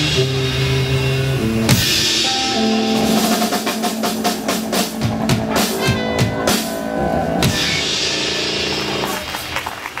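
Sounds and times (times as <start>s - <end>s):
band with tuba and trumpet: 0.0s - 9.8s
scattered handclaps: 8.7s - 10.0s.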